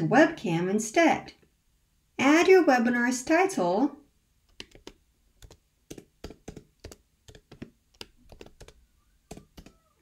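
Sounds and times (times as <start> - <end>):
computer keyboard typing: 4.5 - 9.9.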